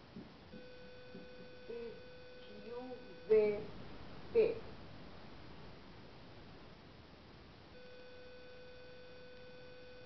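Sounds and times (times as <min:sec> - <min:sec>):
faint steady mid-pitched tone: 0:00.0 - 0:10.0.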